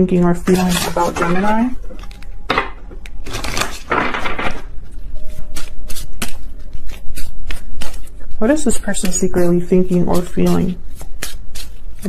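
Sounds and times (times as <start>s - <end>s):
cards riffling swishes: 5.2s - 9.3s, 10.0s - 12.0s.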